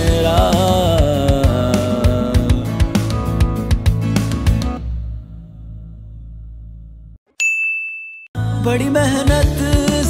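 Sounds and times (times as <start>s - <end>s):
bright ding chime: 7.3s - 8.4s.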